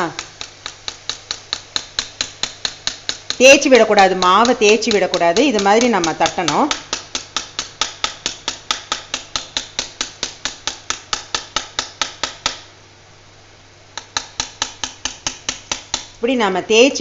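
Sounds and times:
ladle tapping on steel plate: 0.0 - 12.7, 14.0 - 16.2
faint oil frying hiss: 0.0 - 17.0.

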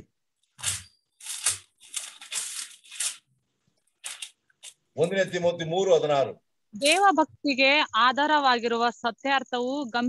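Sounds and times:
rustling crinkling noise: 0.3 - 5.0.

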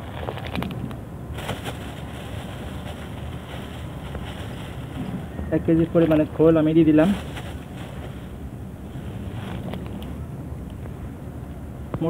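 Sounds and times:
wind on microphone: 0.0 - 6.1.

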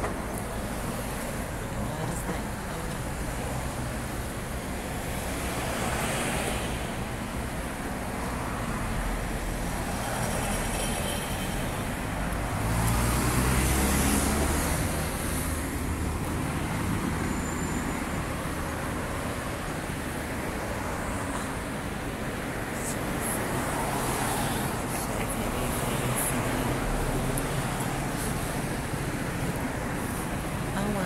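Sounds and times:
passing cars road noise: 0.0 - 31.0.

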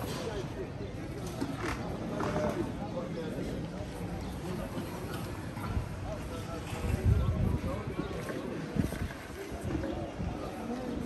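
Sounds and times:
low rumble of wind: 3.6 - 11.0.

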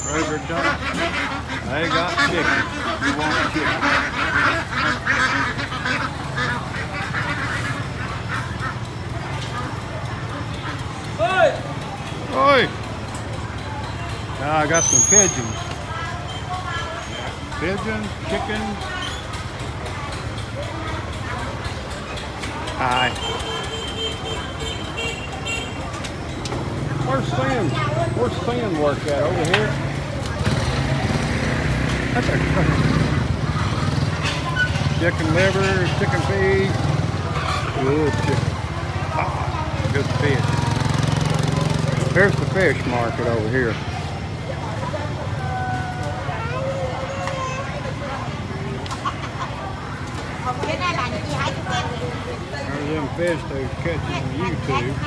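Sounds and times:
chatter of market voices: 0.0 - 55.0
ducks quacking: 0.1 - 11.1.

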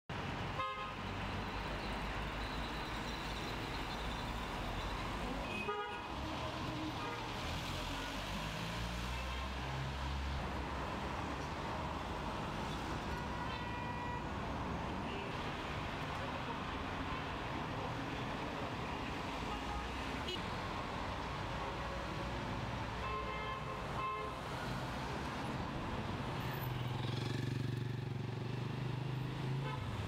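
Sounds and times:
cars passing: 6.2 - 13.5.

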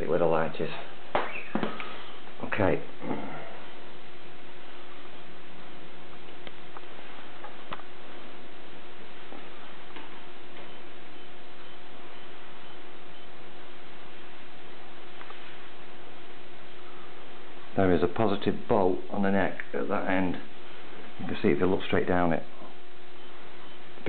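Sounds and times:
faint hum: 0.0 - 24.0
steady hiss: 0.0 - 24.0.

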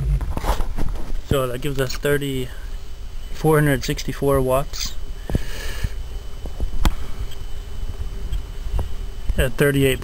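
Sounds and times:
rough microphone rumble: 0.0 - 10.0.

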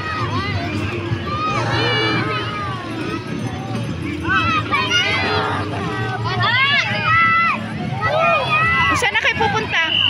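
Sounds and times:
young people talking and calling: 0.0 - 10.0.

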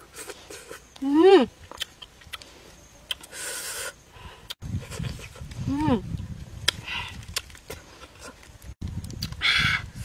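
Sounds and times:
chewing and mouth noises: 1.6 - 2.5.

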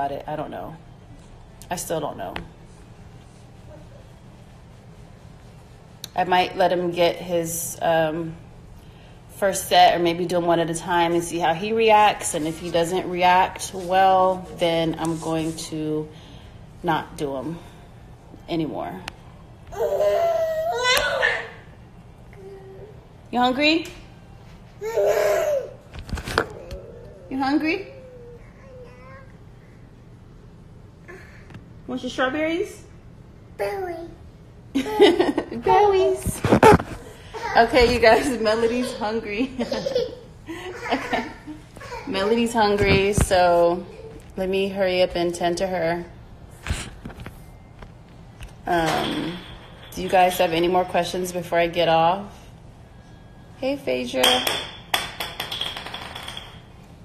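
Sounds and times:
toddler whining: 19.7 - 21.7, 24.8 - 29.4, 41.8 - 42.4
hard objects clinking and tapping: 54.2 - 56.8.

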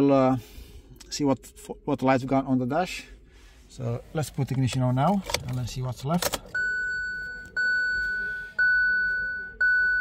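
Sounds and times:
dashboard warning chime: 6.5 - 10.0.

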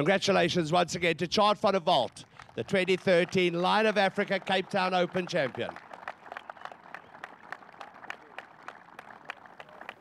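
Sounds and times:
light scattered applause: 1.9 - 10.0.

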